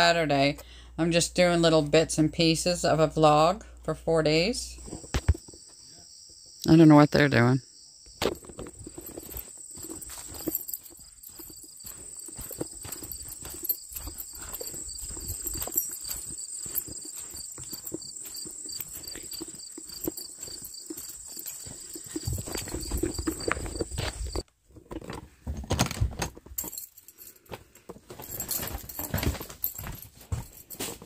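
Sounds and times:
insects chirping: 3.1s - 24.4s, 28.2s - 31.0s
footsteps on grass and gravel: 8.2s - 24.4s, 27.6s - 31.0s.

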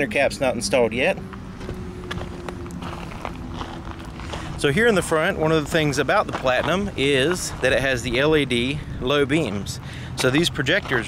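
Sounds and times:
footsteps on gravel: 1.3s - 8.7s, 10.2s - 11.0s.

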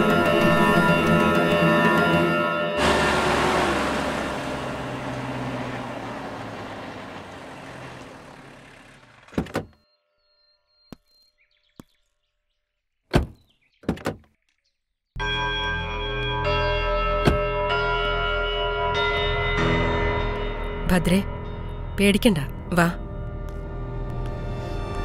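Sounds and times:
music with bell-like tones: 0.0s - 3.7s, 15.2s - 25.0s
vehicle door thuds: 9.3s - 9.8s.

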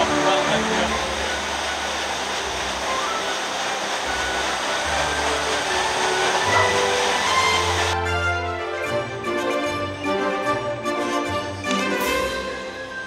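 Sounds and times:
soft background music: 0.0s - 13.0s
water rushing: 0.0s - 13.0s.

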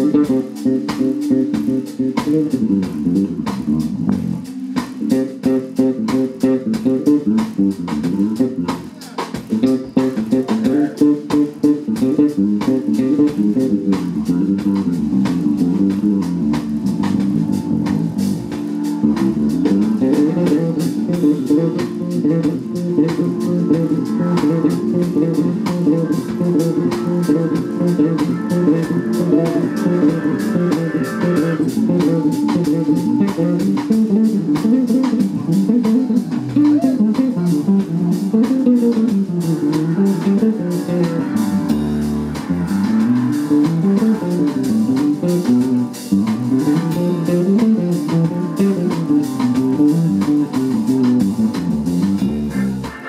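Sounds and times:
drums keeping time: 0.0s - 53.0s
electric bass guitar line: 0.0s - 53.0s.

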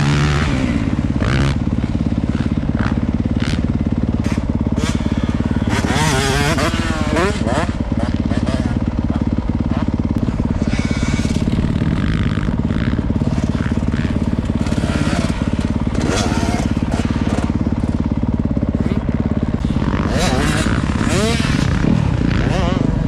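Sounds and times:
dirt bikes revving: 0.0s - 23.0s
motorbike engine idling: 0.0s - 23.0s.

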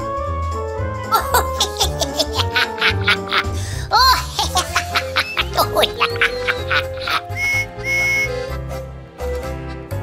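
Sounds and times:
children's background music: 0.8s - 10.0s
train whistle toots: 7.3s - 8.5s.

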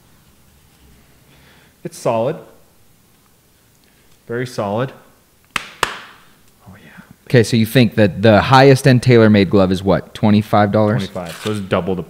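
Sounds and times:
sharp snaps: 5.4s - 6.6s.

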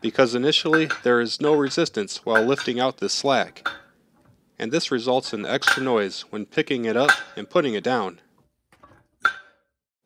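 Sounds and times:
metal plate clanking on barbell: 2.3s - 2.8s, 5.6s - 6.1s.

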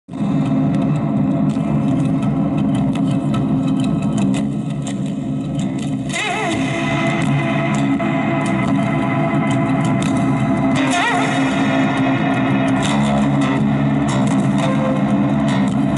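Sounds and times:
amplified acoustic guitar playing: 12.0s - 15.9s.

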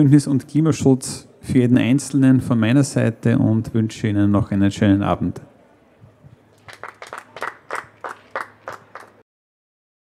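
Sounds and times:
scattered applause: 6.5s - 9.2s.

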